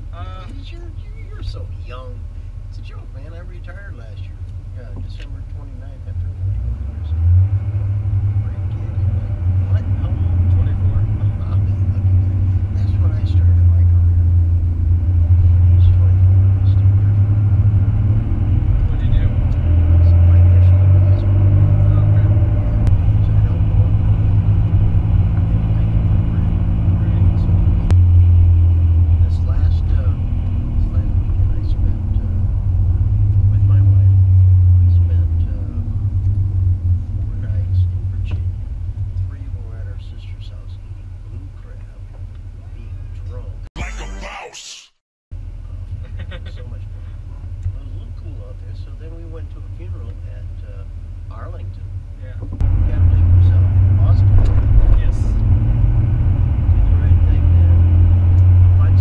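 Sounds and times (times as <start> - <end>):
pickup truck driving from inside: 5.0 - 43.1, 52.3 - 59.0.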